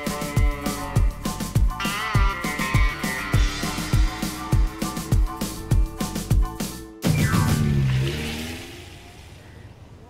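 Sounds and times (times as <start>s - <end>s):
vehicle passing by: 7.5s - 10.0s.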